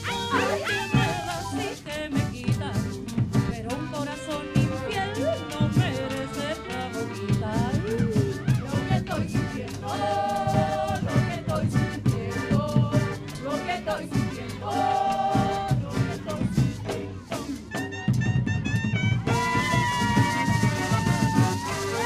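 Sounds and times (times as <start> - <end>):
accordion melody: 0.0 - 22.0
drum and percussion rhythm: 0.0 - 22.0
horn melody: 7.6 - 13.6, 17.7 - 22.0.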